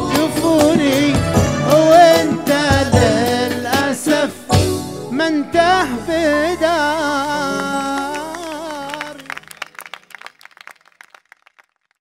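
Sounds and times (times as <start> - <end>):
man singing with accompaniment: 0.0 - 9.5
hand clapping: 7.6 - 11.7.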